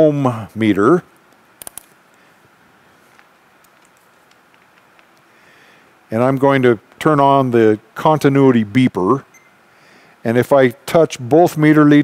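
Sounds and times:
sharp clicks of multimeter handling: 1.6 - 1.9.

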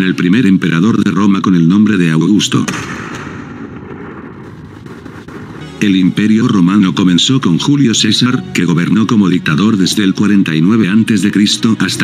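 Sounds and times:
rumbling boom: 2.6 - 7.8.

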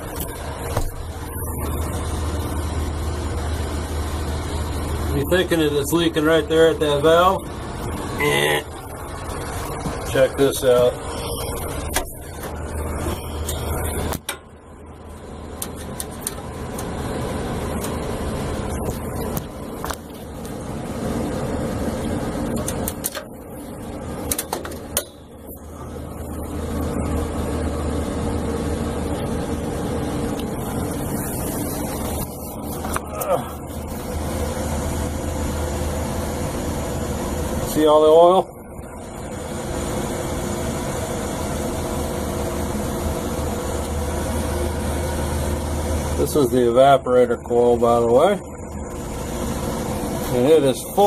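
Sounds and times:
air conditioning machinery humming: 0.0 - 51.0.

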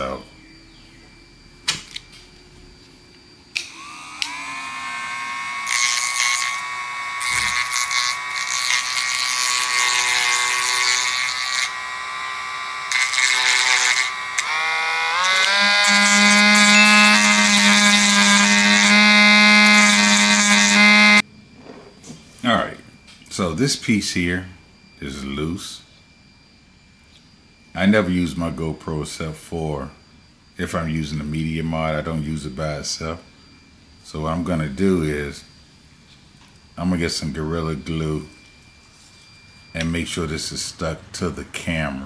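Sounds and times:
rotary tool grinding plastic: 3.6 - 21.2.

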